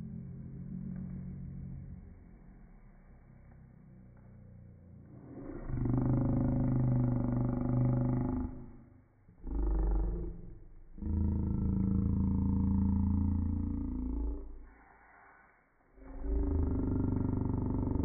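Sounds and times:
slowed-down voices: 0.0 - 18.0.

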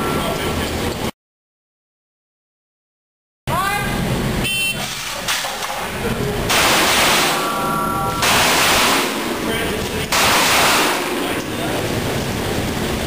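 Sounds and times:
pistol shots indoors: 6.5 - 9.4, 10.1 - 11.3.

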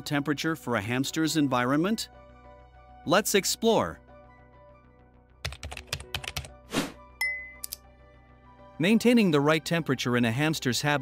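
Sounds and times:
faint background music: 0.0 - 11.0
short swish: 6.7 - 7.0.

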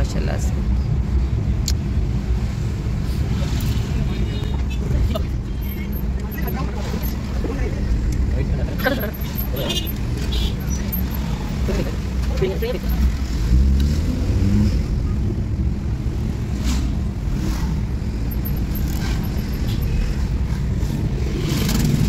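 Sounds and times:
car engine rumble: 0.0 - 22.0
tyres on road: 0.0 - 22.0
voices: 3.3 - 13.4.

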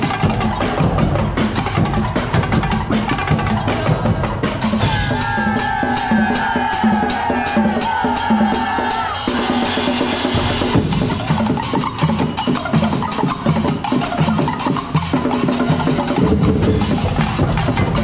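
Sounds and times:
mallet keyboard percussion: 0.0 - 6.2, 6.8 - 18.0
drum ensemble playing: 0.0 - 18.0.

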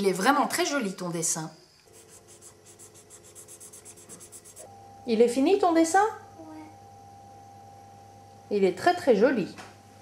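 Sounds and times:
marker pen scratching on paper: 1.9 - 4.7.

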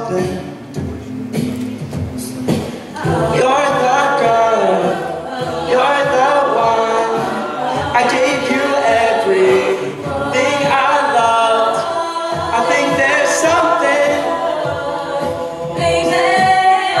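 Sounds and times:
a cappella group singing in harmony: 2.2 - 17.0.

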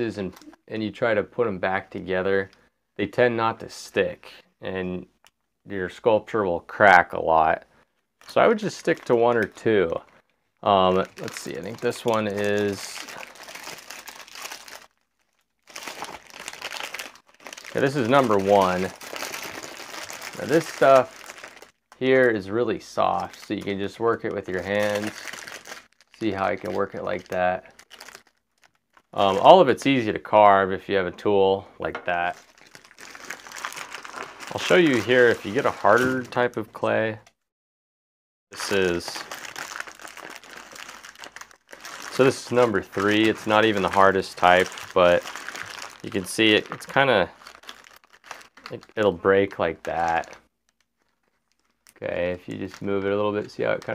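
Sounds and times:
plastic wrapper crinkling: 0.0 - 0.7, 8.2 - 30.1, 32.0 - 36.5, 38.6 - 53.9.

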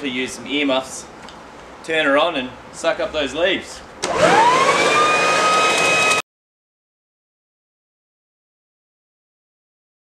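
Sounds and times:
leaf blower motor whine: 4.0 - 6.2.

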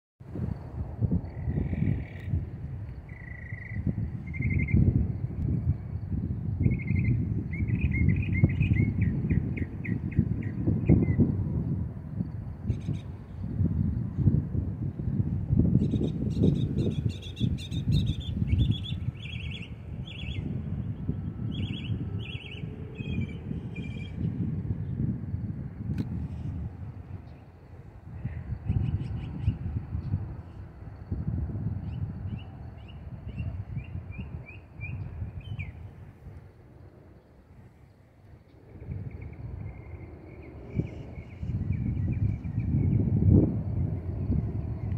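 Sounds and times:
bird trill: 3.1 - 4.9, 6.6 - 11.2, 15.8 - 20.5, 21.5 - 24.2, 31.8 - 35.8
small birds chirping: 3.1 - 4.9, 15.8 - 20.9.

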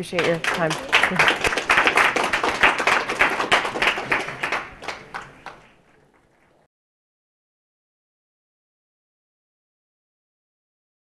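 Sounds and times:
audience applauding: 0.0 - 6.6.

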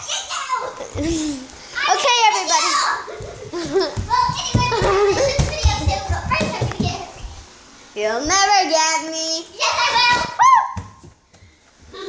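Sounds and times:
child's voice: 0.0 - 3.1, 4.0 - 7.3, 8.2 - 10.4.

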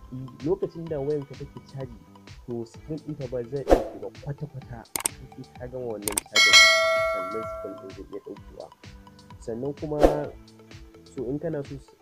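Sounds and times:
short clicks: 6.1 - 7.8
bell ding: 6.1 - 7.9.

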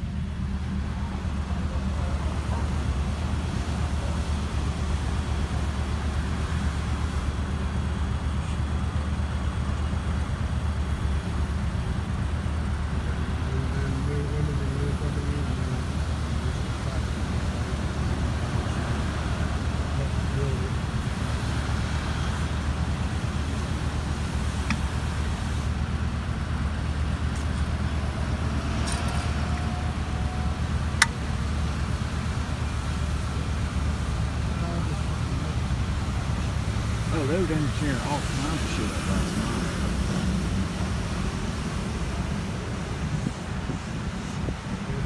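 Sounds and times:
car driving rumble: 0.0 - 45.0
road noise: 0.0 - 45.0
car cabin rumble: 22.0 - 28.6.

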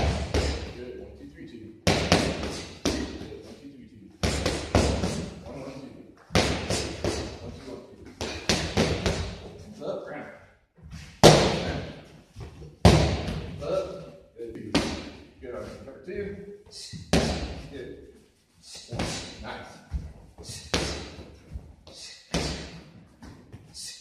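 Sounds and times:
punches hitting focus mitts: 1.8 - 3.3, 6.3 - 7.4, 8.2 - 9.4, 11.2 - 11.9, 12.8 - 13.6, 17.1 - 17.6.

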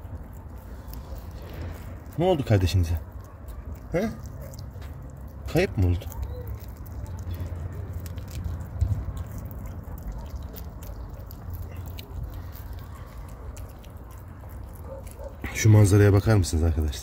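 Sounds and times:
kittens crunching food: 0.0 - 17.0.

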